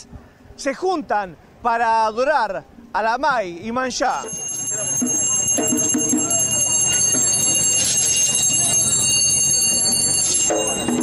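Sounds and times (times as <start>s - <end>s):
bells ringing: 4.1s - 11.0s.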